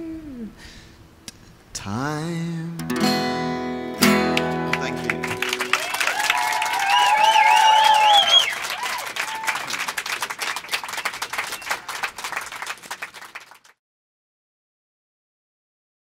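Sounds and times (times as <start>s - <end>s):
acoustic guitar chord: 2.2s - 5.7s
audience applauding: 4.2s - 13.8s
people cheering: 4.4s - 13.6s.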